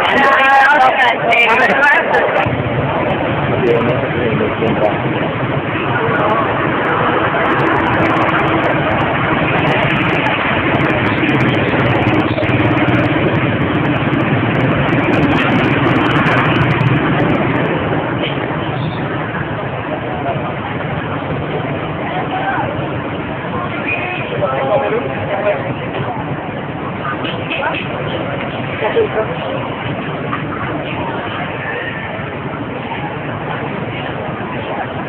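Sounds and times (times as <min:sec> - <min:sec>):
voices: 0:00.0 - 0:35.0
vehicle engine running: 0:02.4 - 0:35.0.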